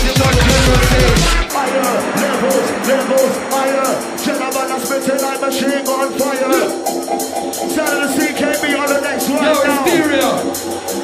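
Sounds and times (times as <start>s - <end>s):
fast hi-hats: 0.0s - 11.0s
wavering melodic line: 0.3s - 11.0s.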